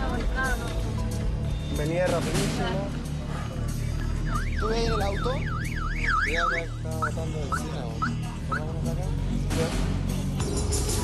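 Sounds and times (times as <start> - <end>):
electronic alarm warbling: 3.8 - 8.8.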